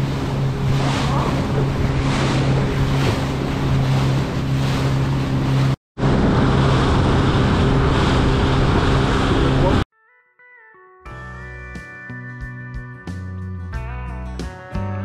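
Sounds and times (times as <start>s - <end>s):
boat motor running: 0.0s - 9.8s
water rushing off hull: 0.0s - 9.8s
wind buffeting microphone: 0.0s - 9.8s.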